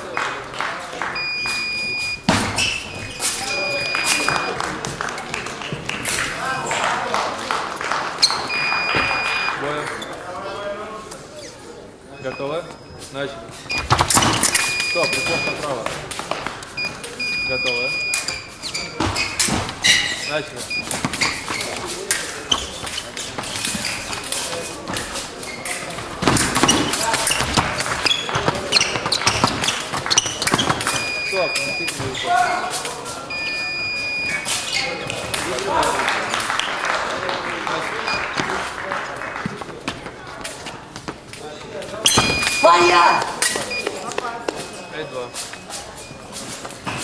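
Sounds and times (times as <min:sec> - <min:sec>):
short electronic beeps: 0:01.2 - 0:04.6, 0:14.5 - 0:15.6, 0:16.8 - 0:18.6, 0:30.9 - 0:32.0, 0:33.3 - 0:34.6, 0:42.1 - 0:44.0.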